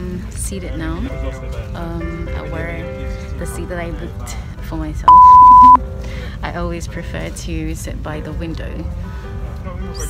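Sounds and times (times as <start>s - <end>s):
electronic censor beep: 5.1s - 5.8s.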